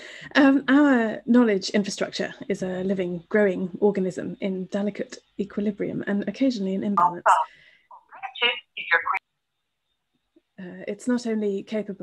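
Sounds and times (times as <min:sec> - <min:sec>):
woman speaking over telephone: 0:07.0 - 0:09.2.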